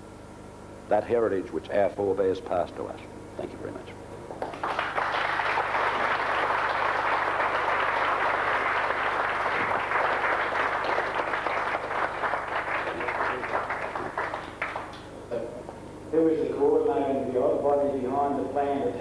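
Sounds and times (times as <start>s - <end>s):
audience applauding: 4.4s - 15.0s.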